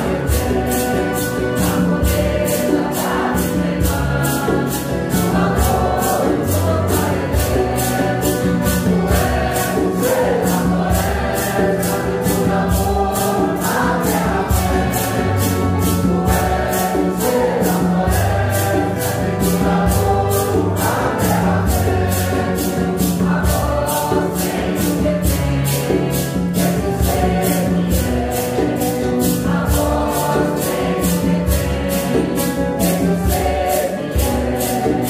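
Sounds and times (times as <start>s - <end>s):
congregation singing a hymn: 0.0s - 35.0s
maracas shaking: 0.0s - 35.0s.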